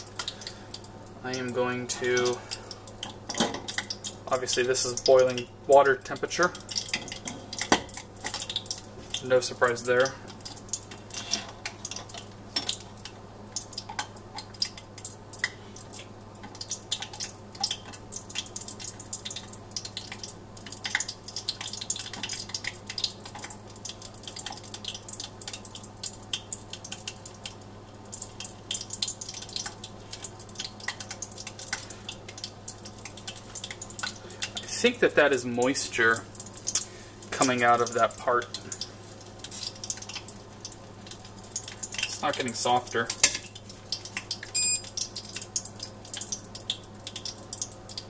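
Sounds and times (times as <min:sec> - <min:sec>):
hot oil crackling and popping: 0:00.0 - 0:48.0.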